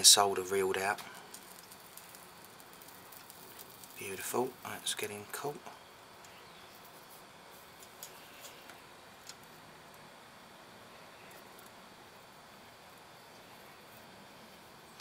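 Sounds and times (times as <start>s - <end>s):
faint soldering ticks: 0.9s - 4.8s, 11.3s - 11.8s.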